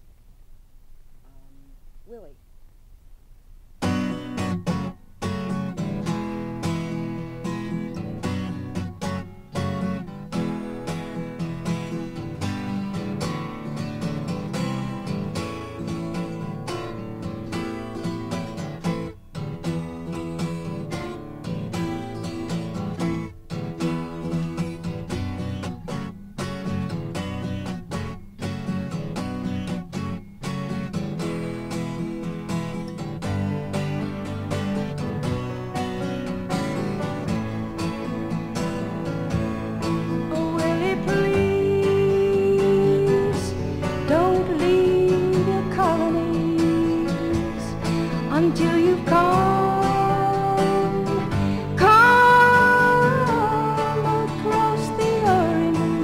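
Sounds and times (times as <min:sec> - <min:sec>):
acoustic guitar strumming chords: 0:03.7 - 0:56.0.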